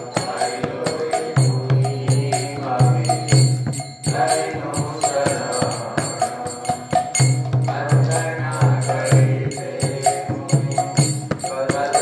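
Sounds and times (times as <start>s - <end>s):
brass hand cymbals struck: 0.0s - 12.0s
man chanting devotional song: 0.0s - 12.0s.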